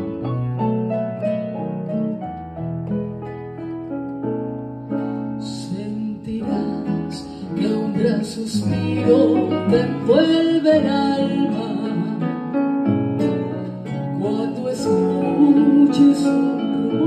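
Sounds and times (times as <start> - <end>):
electronic keyboard piano chords: 0.0 - 17.0.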